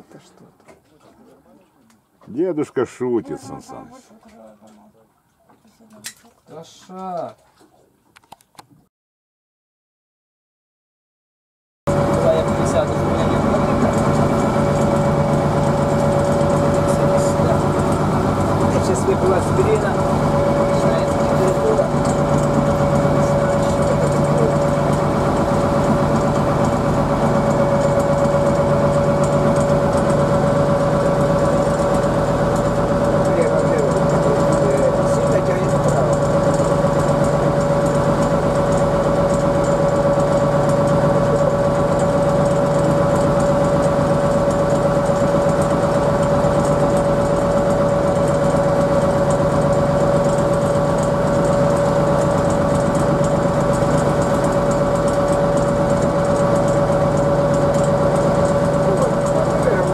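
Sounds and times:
boat engine droning: 0:11.9 - 0:59.9.

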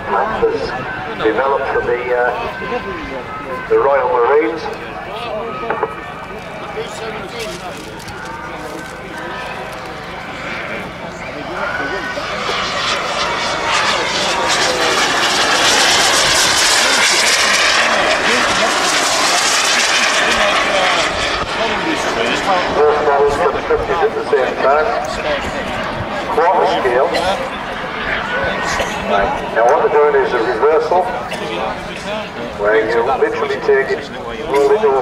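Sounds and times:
model jet turbine whine: 0:00.0 - 0:35.0.

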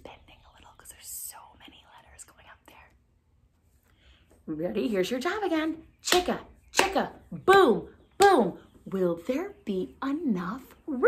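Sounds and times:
woman whispering: 0:00.0 - 0:03.1.

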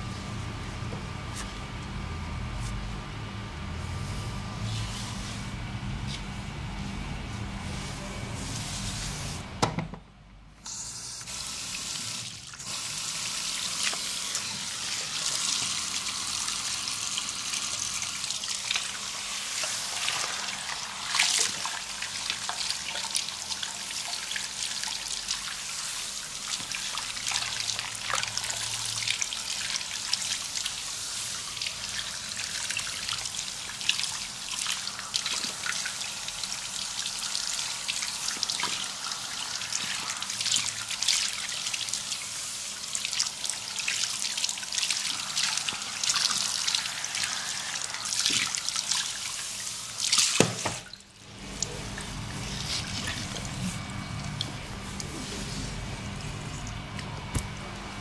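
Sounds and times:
sprayer water running: 0:00.0 - 0:09.7, 0:10.7 - 0:58.0.

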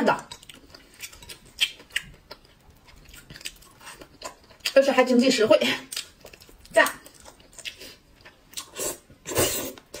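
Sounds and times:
slurping noodles: 0:08.7 - 0:10.0.

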